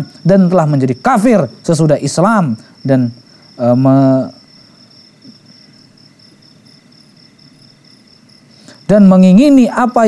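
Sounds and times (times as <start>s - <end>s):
man talking: 0.0s - 4.4s, 8.9s - 10.0s
crickets chirping: 0.0s - 10.0s.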